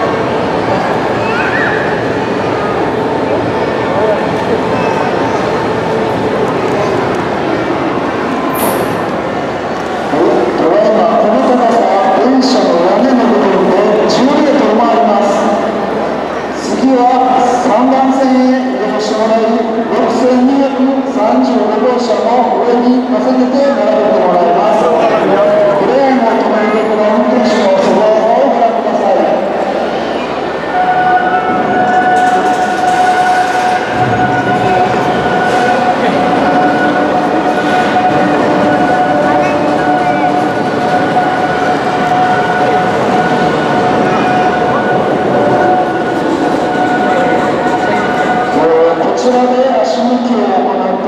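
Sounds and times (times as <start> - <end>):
steady high tone: 29.7 - 49.2.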